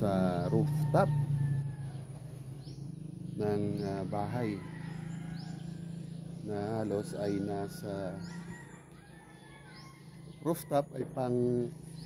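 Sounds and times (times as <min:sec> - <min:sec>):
high bird chirp: 0:00.0 - 0:12.0.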